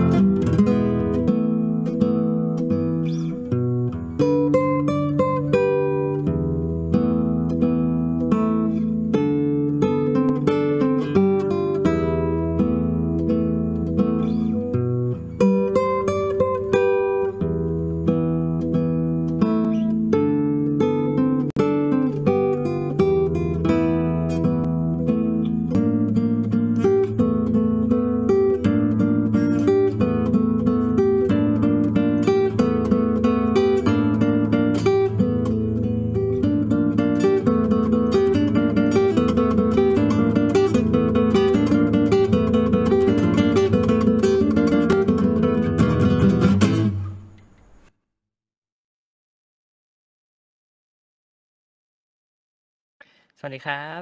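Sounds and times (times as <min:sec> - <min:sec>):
classical guitar fingerstyle: 0:00.0 - 0:48.0.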